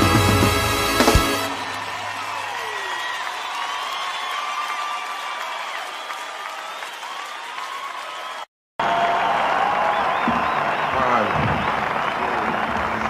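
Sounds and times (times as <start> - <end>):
audience applauding and cheering: 0.0 - 13.0.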